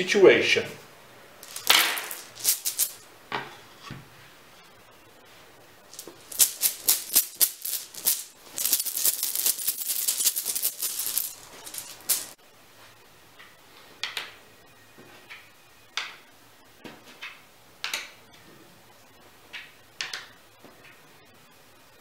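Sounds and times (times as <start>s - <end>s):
game chips rattling in a bag: 1.4s - 3.0s, 5.9s - 12.4s.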